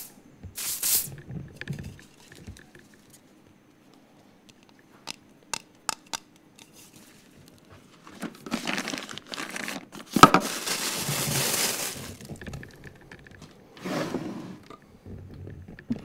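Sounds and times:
plastic bags crinkling: 0:06.7 - 0:13.5.

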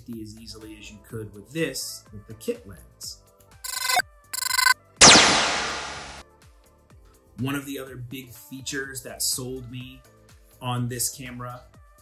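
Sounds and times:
short ringing electronic tones: 0:03.7 - 0:04.7
loud crash-like hit: 0:05.0 - 0:06.2.

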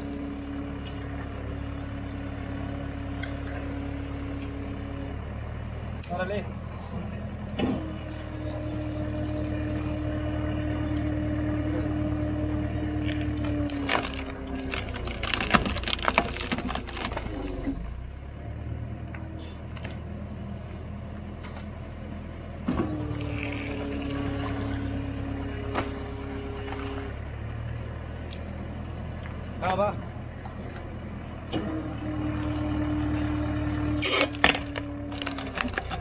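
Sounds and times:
tractor engine running: 0:00.0 - 0:36.0
wood cracking and splintering: 0:13.0 - 0:17.8, 0:33.9 - 0:36.0
hydraulic ram whining: 0:30.3 - 0:36.0.

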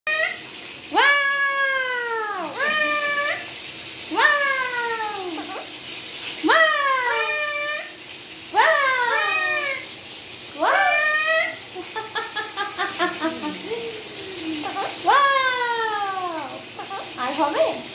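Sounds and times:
parakeet calling: 0:02.4 - 0:10.0, 0:14.0 - 0:17.6.

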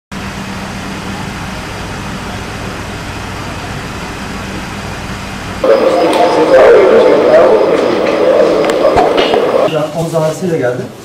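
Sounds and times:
voices: 0:05.6 - 0:11.0.

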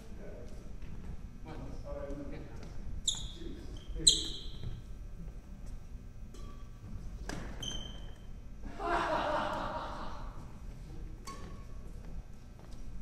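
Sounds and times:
shoes squeaking on wooden floor: 0:03.0 - 0:05.0, 0:07.3 - 0:08.3.

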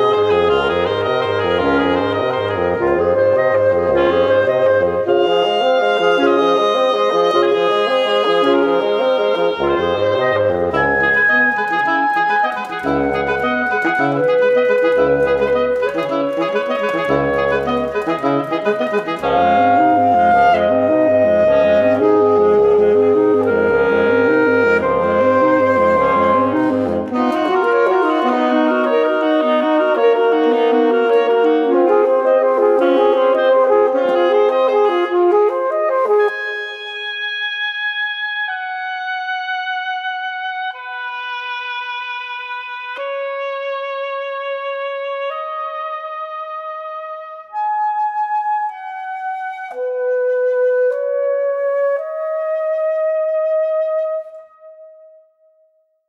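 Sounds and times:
reed quartet playing: 0:00.0 - 0:54.2.

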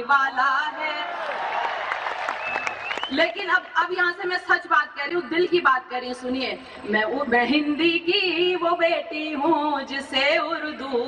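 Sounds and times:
audience applauding: 0:01.0 - 0:03.7.

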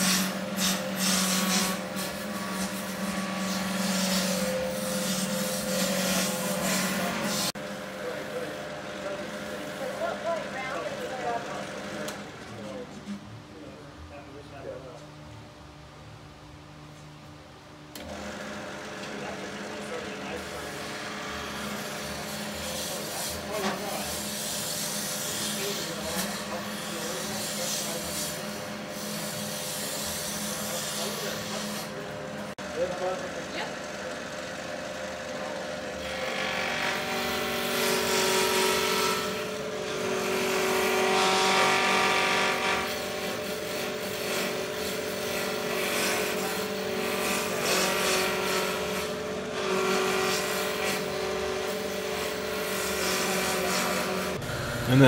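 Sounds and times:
turning tool cutting wood: 0:00.0 - 0:07.6, 0:18.0 - 0:32.4, 0:33.0 - 0:55.0
lathe motor humming: 0:00.0 - 0:12.7, 0:18.0 - 0:55.0.

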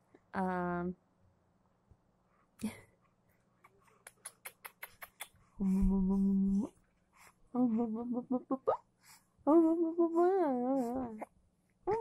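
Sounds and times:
lip-smacking kisses: 0:04.0 - 0:05.4
woman humming: 0:05.6 - 0:06.7, 0:07.6 - 0:08.8, 0:09.5 - 0:11.3.

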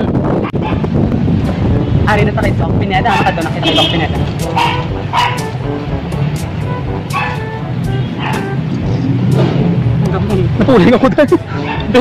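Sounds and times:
low street noise: 0:00.0 - 0:12.0
dog barking: 0:00.5 - 0:00.9, 0:03.1 - 0:03.6, 0:04.5 - 0:05.5, 0:07.1 - 0:07.5, 0:08.2 - 0:08.5, 0:11.6 - 0:12.0.

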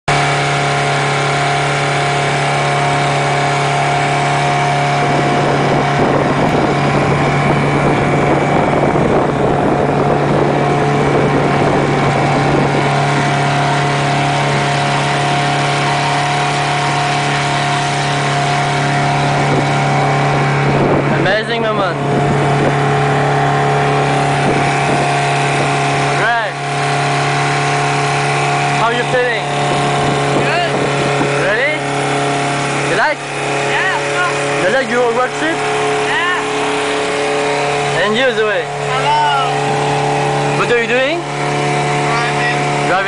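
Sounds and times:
outboard motor running: 0:00.0 - 0:43.0
rushing wind and water: 0:00.1 - 0:43.0.

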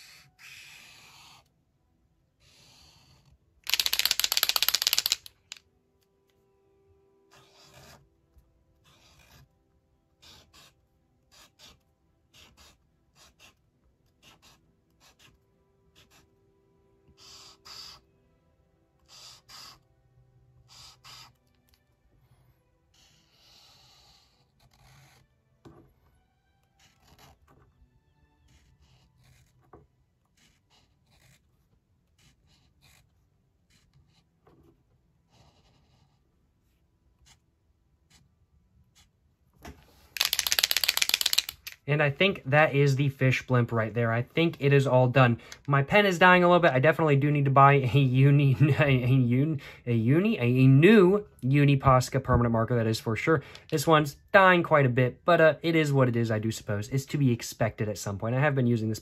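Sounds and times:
marker scratching on paper: 0:00.0 - 0:01.5, 0:02.4 - 0:05.2, 0:07.3 - 0:08.1, 0:08.8 - 0:09.5, 0:10.2 - 0:16.4, 0:17.1 - 0:18.1, 0:19.0 - 0:19.9, 0:20.6 - 0:21.8, 0:22.9 - 0:25.3, 0:26.7 - 0:27.6, 0:28.4 - 0:39.3
paper and pen rustling: 0:02.8 - 0:05.6, 0:26.7 - 0:27.7, 0:28.5 - 0:38.3, 0:38.9 - 0:43.7.

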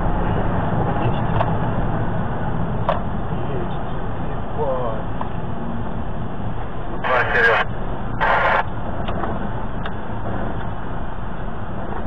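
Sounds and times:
vehicle engine and road rumble: 0:00.0 - 0:12.0
person's voice: 0:07.0 - 0:08.6.

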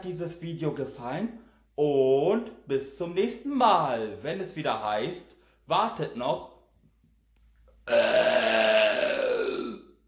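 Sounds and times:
man burping: 0:07.8 - 0:10.0.

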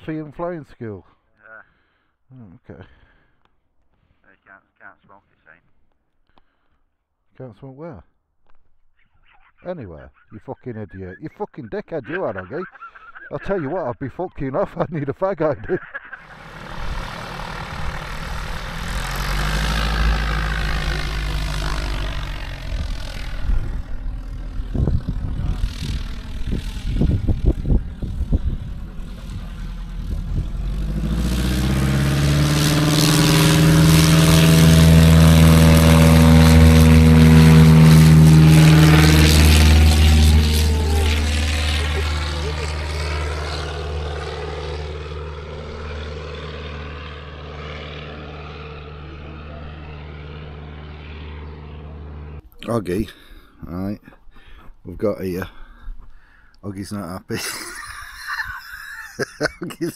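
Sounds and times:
propeller aircraft engine passing: 0:16.0 - 0:59.9.

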